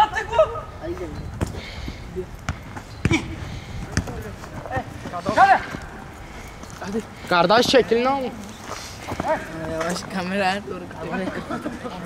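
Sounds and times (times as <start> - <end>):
players shouting: 4.0 - 6.2.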